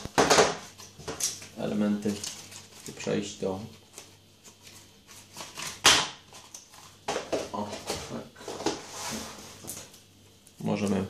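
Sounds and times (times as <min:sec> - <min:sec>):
plastic film rustling: 0:00.0 - 0:10.0.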